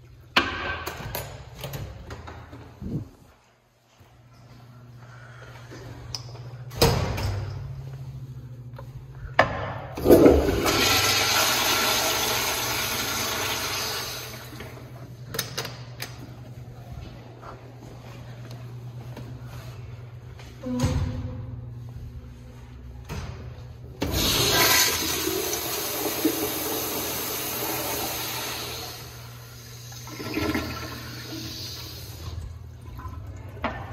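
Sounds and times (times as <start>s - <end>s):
toilet flushing: 9.9s - 15.1s, 24.0s - 33.9s.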